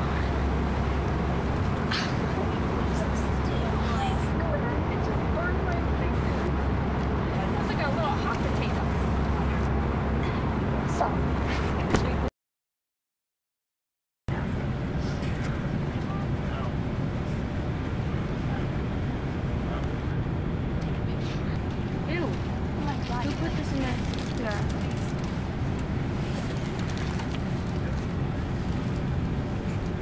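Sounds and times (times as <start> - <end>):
airliner cabin rumble: 0.0 - 12.3, 14.3 - 30.0
passengers talking: 0.0 - 12.3, 14.3 - 30.0.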